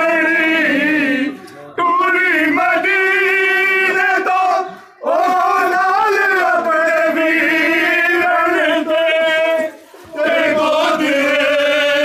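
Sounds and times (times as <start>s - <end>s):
men chanting a lament: 0.0s - 12.0s.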